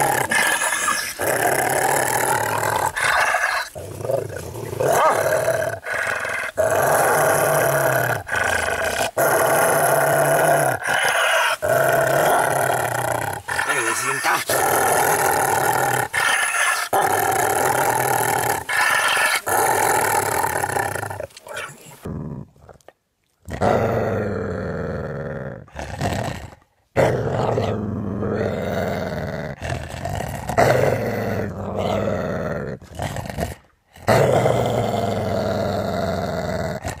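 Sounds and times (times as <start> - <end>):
large dog growling: 0.0 - 37.0.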